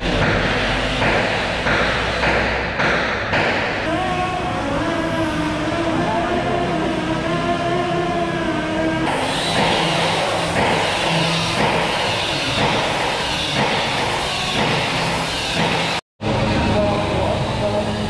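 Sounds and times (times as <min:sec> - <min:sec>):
mechanical hum: 0:00.0 - 0:18.0
pulsing hiss: 0:09.1 - 0:16.0.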